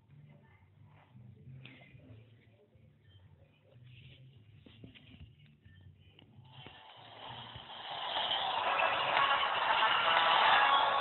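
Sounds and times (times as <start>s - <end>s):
noisy hiss: 6.4s - 11.0s.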